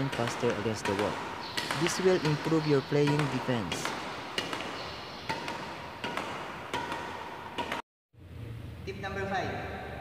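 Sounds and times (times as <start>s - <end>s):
racket striking shuttlecock: 0.0s - 7.8s.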